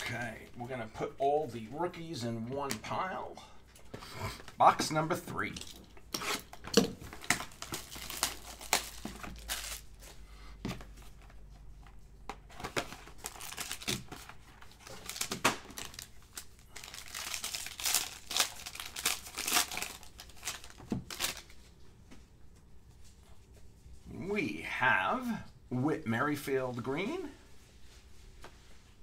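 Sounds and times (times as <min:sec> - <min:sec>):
foil pack crinkling and tearing: 0:06.1 - 0:10.1, 0:12.9 - 0:21.6.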